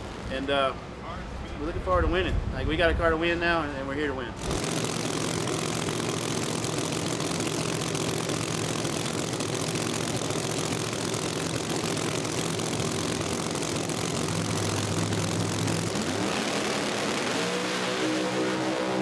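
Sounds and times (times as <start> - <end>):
deeper drone: 4.3 - 19.0
race car engine idling: 4.4 - 17.2.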